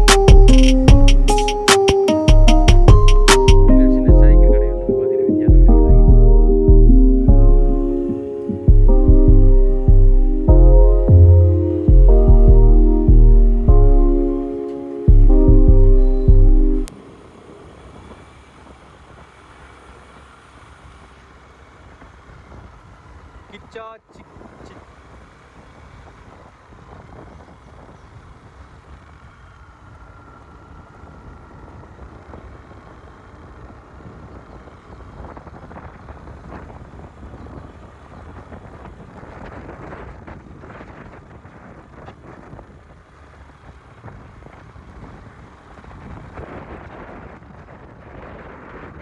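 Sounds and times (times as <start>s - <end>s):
wind and road noise: 0.0s - 49.0s
short pitched chirp: 15.7s - 16.8s
wind buffeting microphone: 24.2s - 49.0s.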